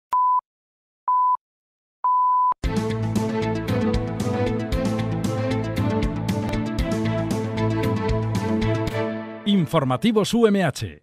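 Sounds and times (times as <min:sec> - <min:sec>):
radio time signal beep: 0:02.1 - 0:02.6
theme music with drum hits: 0:02.6 - 0:09.5.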